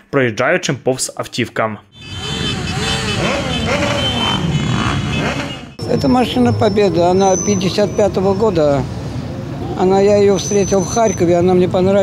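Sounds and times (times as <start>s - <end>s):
motorcycle engines passing: 2.0s - 12.0s.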